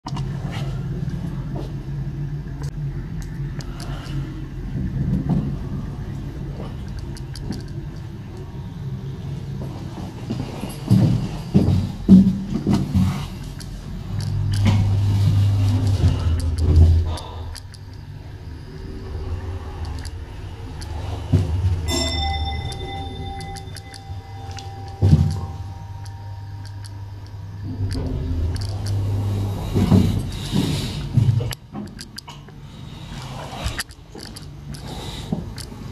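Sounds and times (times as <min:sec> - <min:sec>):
low hydraulic elevator hum: 0:00.1 - 0:35.9
elevator arrival chime: 0:13.4 - 0:31.6.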